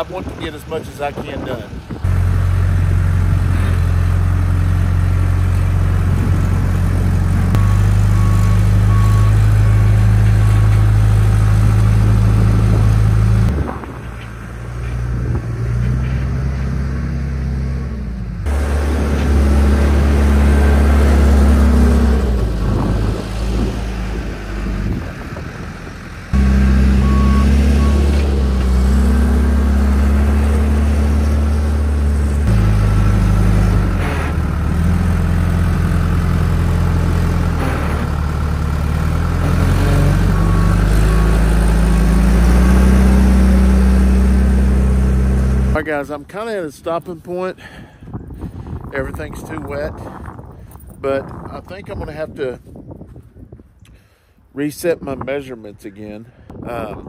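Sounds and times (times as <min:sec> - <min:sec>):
diesel engine under load: 0:00.0 - 0:52.2
machine beeping: 0:26.4 - 0:28.3.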